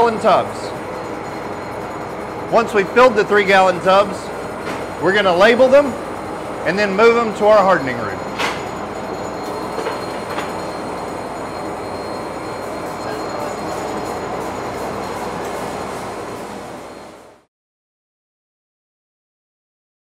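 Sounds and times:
steady machinery noise: 0:00.0 - 0:17.5.

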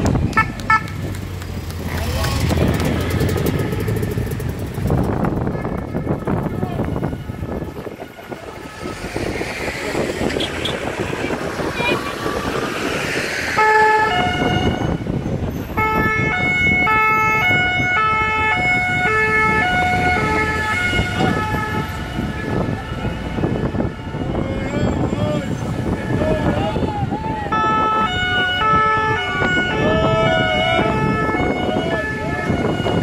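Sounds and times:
passing vans and traffic: 0:00.0 - 0:33.0
two-tone sirens: 0:05.2 - 0:33.0
rising siren sweep: 0:05.4 - 0:33.0.

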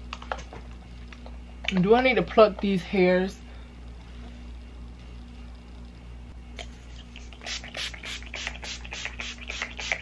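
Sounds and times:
spray bottle hissing sprays: 0:07.4 - 0:10.0.

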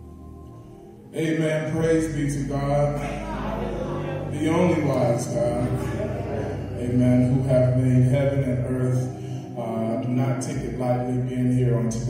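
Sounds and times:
slow chant-like church music: 0:00.0 - 0:12.0.

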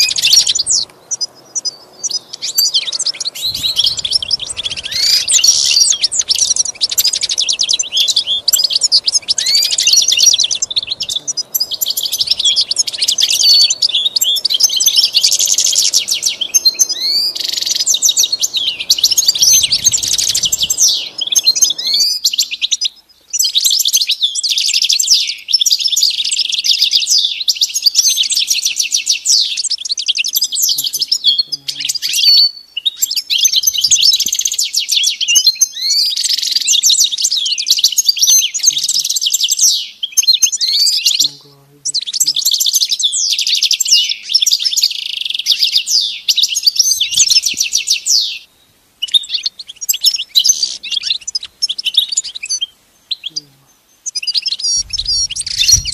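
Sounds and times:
goldfinch singing: 0:00.0 - 0:55.9.

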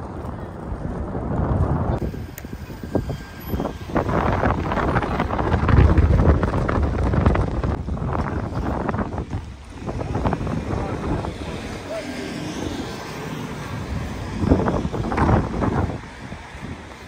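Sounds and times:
street traffic going by: 0:00.0 - 0:17.0
wind buffeting microphone: 0:00.0 - 0:17.0.

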